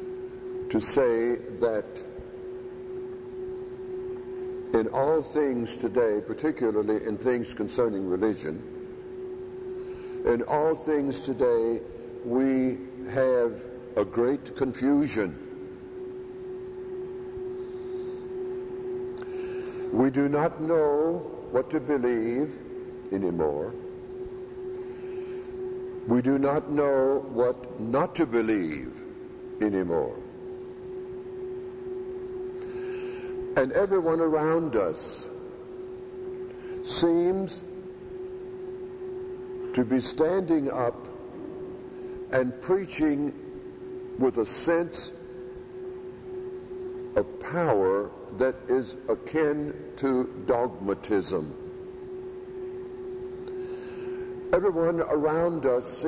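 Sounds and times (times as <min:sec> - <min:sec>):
faint hiss: 0:00.0 - 0:56.0
steady hum: 0:00.0 - 0:56.0.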